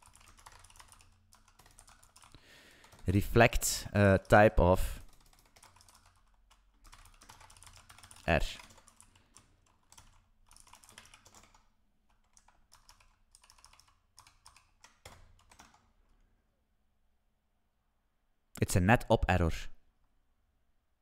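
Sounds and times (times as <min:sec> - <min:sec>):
computer keyboard clicks: 0:00.0 - 0:03.0, 0:05.1 - 0:15.9.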